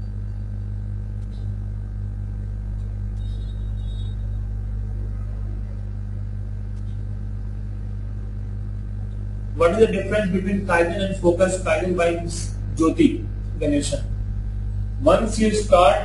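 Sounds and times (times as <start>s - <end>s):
low hum and rumble: 0.0s - 16.0s.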